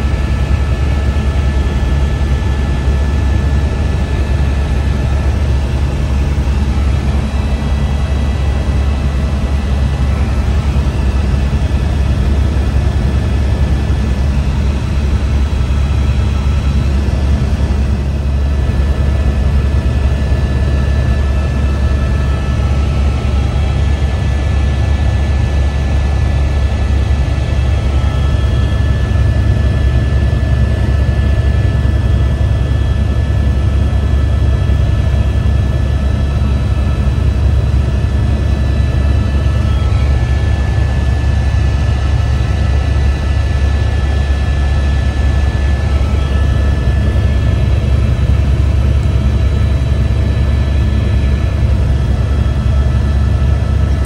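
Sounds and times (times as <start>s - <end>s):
loud low engine rumble: 1.6s - 54.0s.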